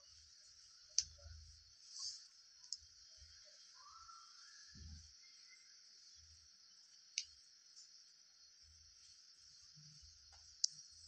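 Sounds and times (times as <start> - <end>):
faint hiss: 0.0 - 11.0
sharp clicks: 7.1 - 7.4.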